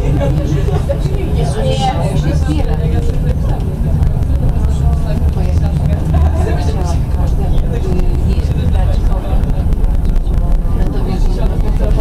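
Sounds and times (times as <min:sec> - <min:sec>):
passengers talking: 0:00.0 - 0:12.0
tram motors and wheels rumbling: 0:00.0 - 0:12.0.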